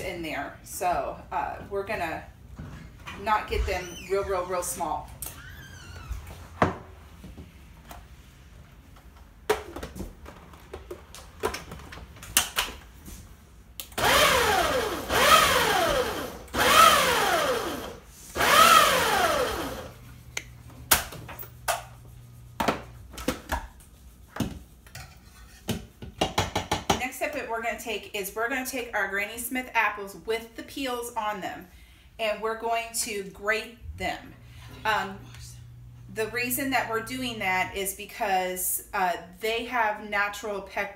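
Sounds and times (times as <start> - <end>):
food processor motor whine: 14.0 - 20.0.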